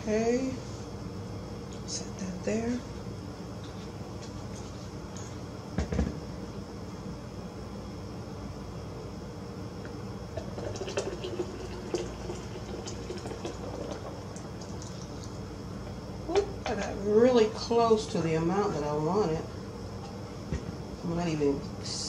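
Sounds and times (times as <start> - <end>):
juice pouring into a jug: 10.3 - 15.6.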